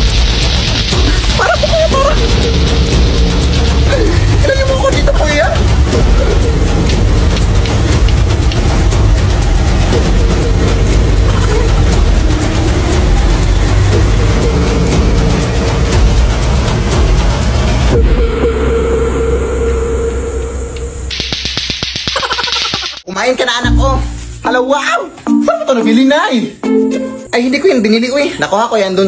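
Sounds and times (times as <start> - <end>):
background music: 0.0 - 21.4, 23.0 - 29.0
clacker balls clacking: 21.1 - 23.1.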